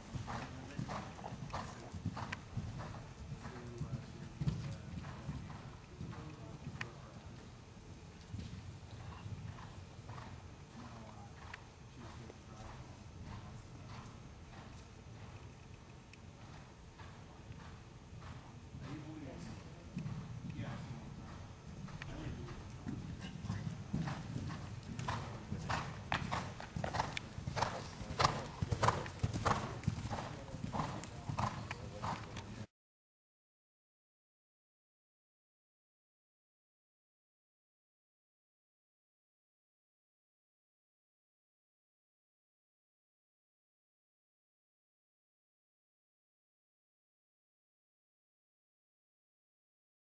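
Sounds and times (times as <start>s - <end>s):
faint dull hoofbeats on soft ground: 0.0s - 32.7s.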